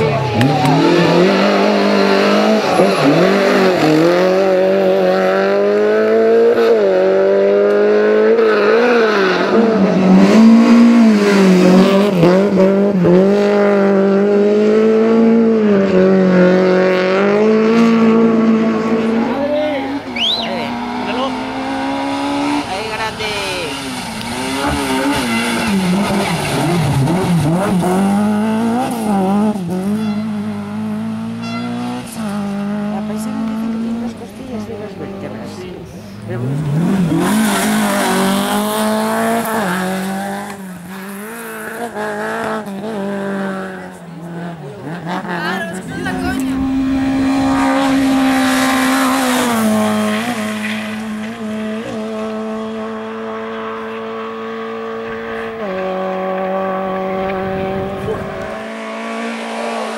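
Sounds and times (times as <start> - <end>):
rally car engine revving: 0.0 - 59.9
high rising whistle: 20.1 - 20.6.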